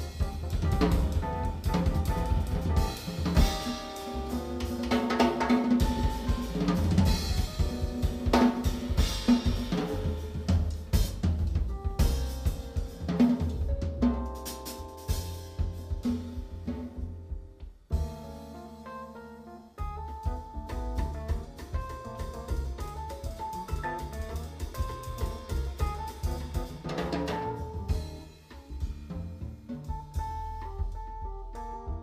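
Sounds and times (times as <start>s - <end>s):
drum kit hits: 0.0s - 18.6s, 19.8s - 32.0s
jazz trio playing: 0.0s - 32.0s.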